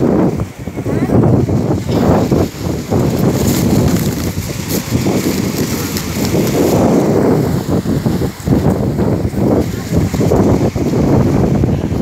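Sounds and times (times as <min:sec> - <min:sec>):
wind buffeting a microphone: 0:00.0 - 0:12.0.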